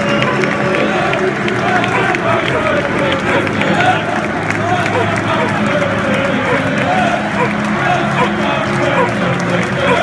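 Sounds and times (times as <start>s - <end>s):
football crowd singing and shouting: 0.0s - 10.0s.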